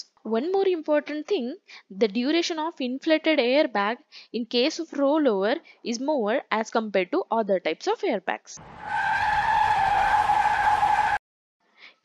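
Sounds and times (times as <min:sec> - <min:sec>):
car tyres squealing: 0:08.6 - 0:11.2.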